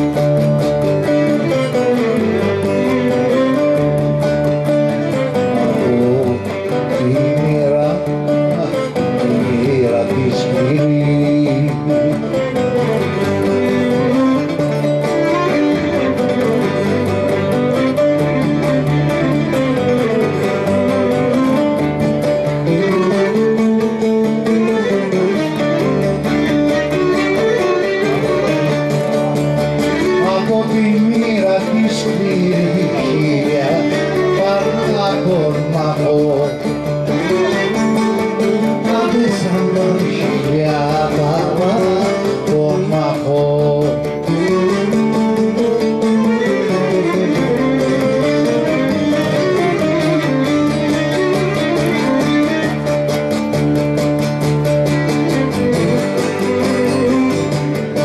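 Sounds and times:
bowed string melody: 0:00.0 - 0:58.0
plucked strings folk music: 0:00.0 - 0:58.0.

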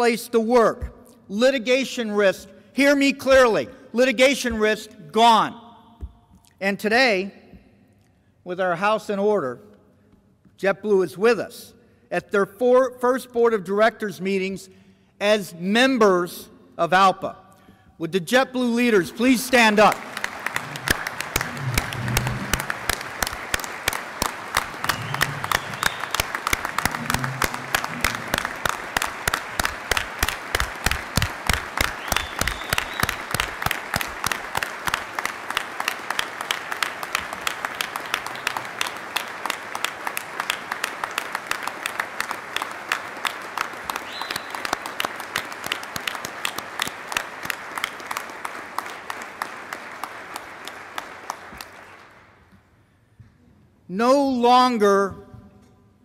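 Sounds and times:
audience clapping in rhythm: 0:18.6 - 0:52.8.

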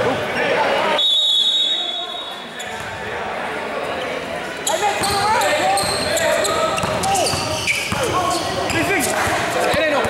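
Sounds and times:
players' voices: 0:00.0 - 0:10.0.

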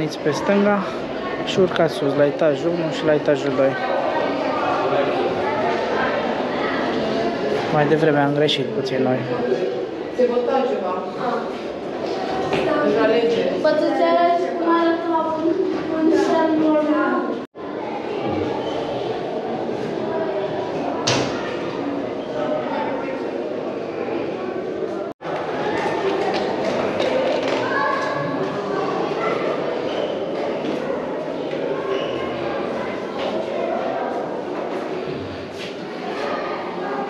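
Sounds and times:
people talking in echoing room: 0:00.0 - 0:37.0.

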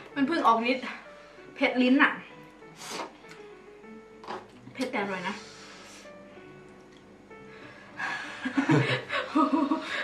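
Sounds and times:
man and woman chuckling: 0:08.0 - 0:10.0.

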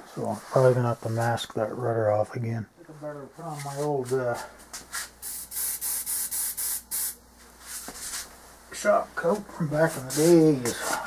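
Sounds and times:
paint sprayer hissing: 0:04.8 - 0:08.3.

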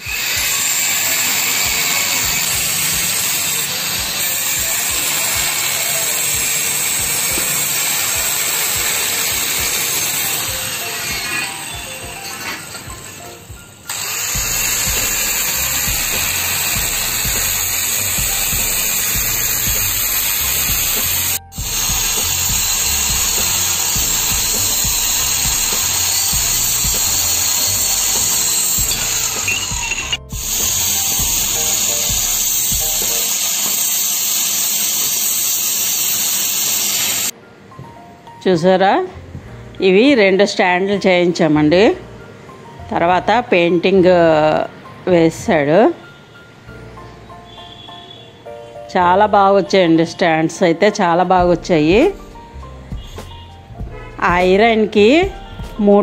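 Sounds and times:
angle grinder cutting steel pipe: 0:00.0 - 0:37.3.

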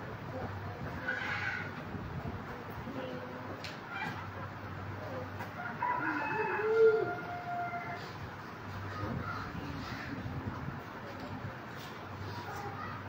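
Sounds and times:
rooster crowing: 0:05.6 - 0:08.1.

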